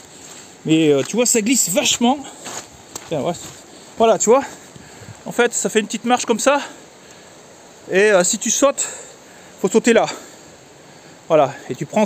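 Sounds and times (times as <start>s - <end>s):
low background noise: 0.0s - 12.0s
man's voice: 0.7s - 2.4s.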